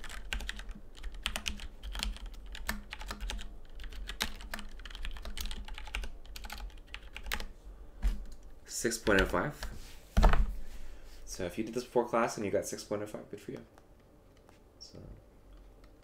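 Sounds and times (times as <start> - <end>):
computer keyboard typing: 0.0 - 7.5.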